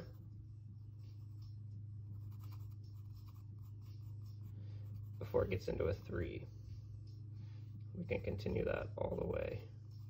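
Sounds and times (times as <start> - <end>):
steady low hum: 0.0 - 10.0
pencil scratching on paper: 2.1 - 5.6.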